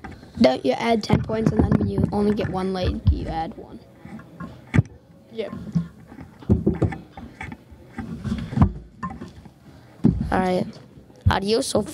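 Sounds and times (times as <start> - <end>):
heavy thump: 1.0 - 3.5
microphone handling bumps and rustling: 1.0 - 4.9, 5.5 - 11.6.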